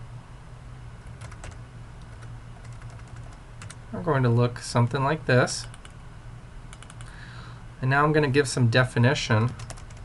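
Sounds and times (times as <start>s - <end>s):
low background hiss: 0.0s - 10.0s
man speaking: 3.9s - 5.7s, 7.8s - 9.6s
keyboard keystrokes: 6.7s - 7.1s, 9.4s - 10.0s.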